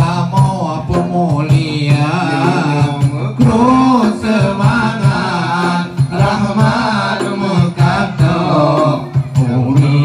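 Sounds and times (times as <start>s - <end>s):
man singing a chant: 0.0s - 10.0s.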